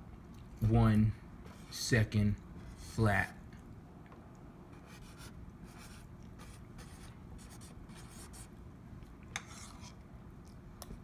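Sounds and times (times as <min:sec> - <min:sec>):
marker scratching on cardboard: 0:04.8 - 0:08.5.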